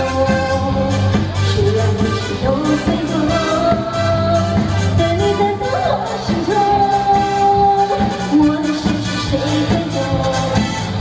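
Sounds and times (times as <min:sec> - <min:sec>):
backing music: 0:00.0 - 0:11.0
woman singing into microphone: 0:00.0 - 0:11.0.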